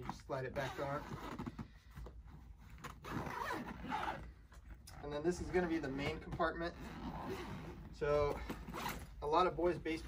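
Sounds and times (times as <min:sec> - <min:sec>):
nylon fabric rustling: 0:00.0 - 0:10.0
zipper being pulled: 0:00.6 - 0:01.7, 0:02.3 - 0:09.1.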